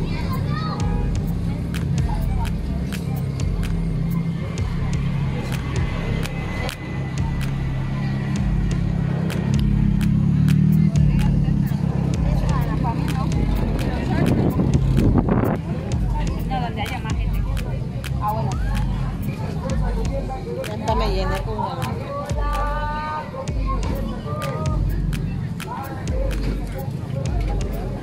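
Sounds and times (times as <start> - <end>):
steady low rumble: 0.0 - 28.0
sharp ticks: 0.3 - 22.7, 23.8 - 28.0.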